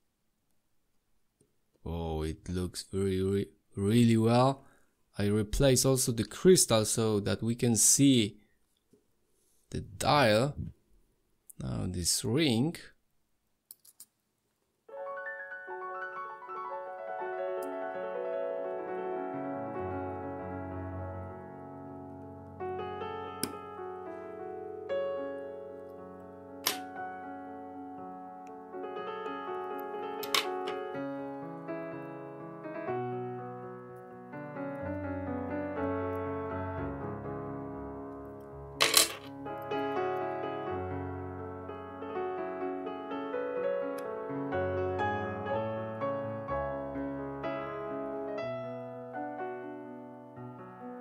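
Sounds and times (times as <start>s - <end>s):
piano music: 14.9s - 51.0s.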